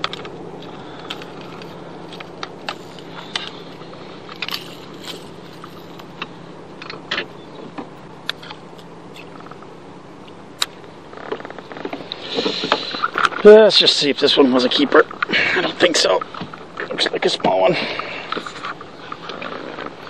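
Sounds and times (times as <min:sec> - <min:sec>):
loud rustling: 0:00.0 - 0:09.8
steady low hum: 0:00.0 - 0:20.0.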